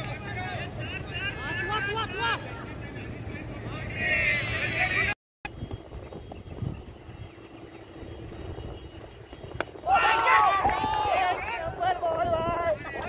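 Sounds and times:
fielders shouting: 0.0s - 5.2s, 9.8s - 13.0s.

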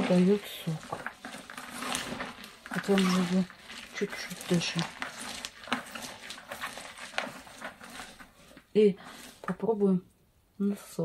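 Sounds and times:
wet rustling and crunching: 0.0s - 9.6s
hands kneading shredded cabbage: 0.0s - 9.9s.

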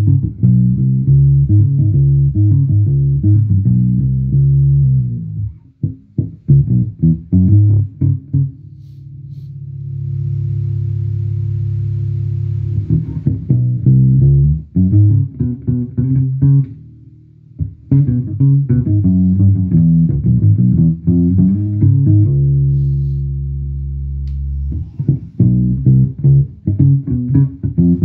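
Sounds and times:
electric bass guitar: 0.0s - 28.0s.

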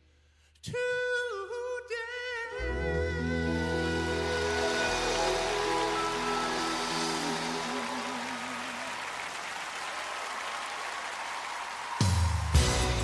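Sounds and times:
gospel song final chord: 2.5s - 10.4s
audience applause: 3.7s - 13.0s.

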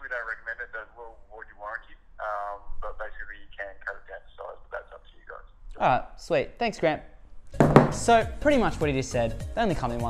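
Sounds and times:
man talking through phone speaker: 0.0s - 5.5s.

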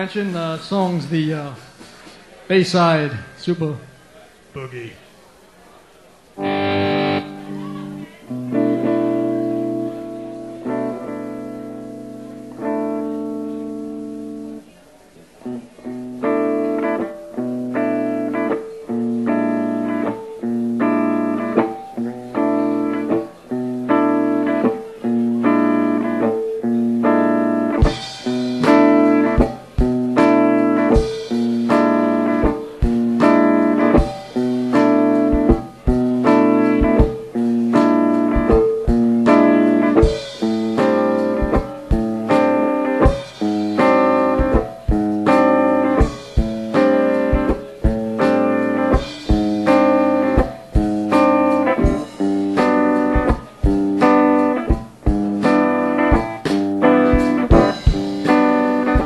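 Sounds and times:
electric guitar chord riff: 6.4s - 14.6s, 15.5s - 59.0s
drums with cymbal crash: 23.9s - 59.0s.

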